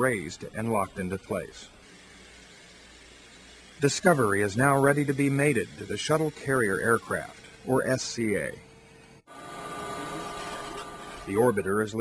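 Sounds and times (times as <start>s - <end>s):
machinery hum with whine: 0.0s - 12.0s.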